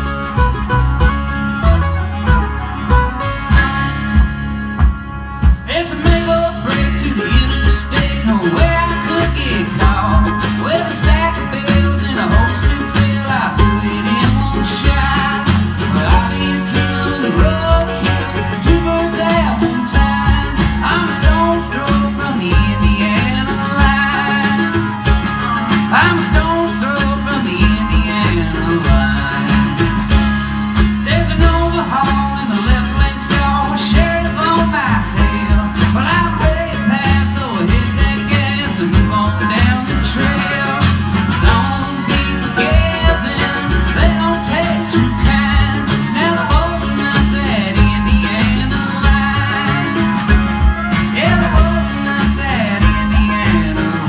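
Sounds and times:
bluegrass string band playing: 0.0 - 54.0.

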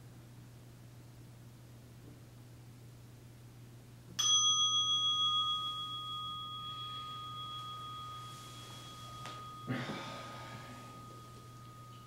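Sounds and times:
meditation bell ringing: 4.2 - 12.0.

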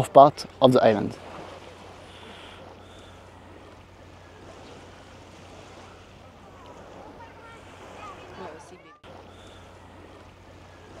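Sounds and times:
constant low hum: 0.0 - 11.0
light breeze: 0.0 - 11.0
small waves lapping on sand: 0.0 - 11.0.

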